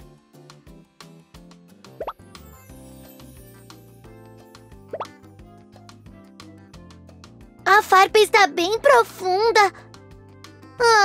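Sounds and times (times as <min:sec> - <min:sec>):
light cartoon music: 0:00.0 - 0:11.0.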